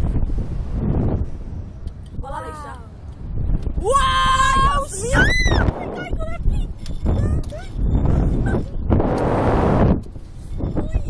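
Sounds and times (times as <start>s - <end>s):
wind rushing past microphone: 0.0s - 11.0s.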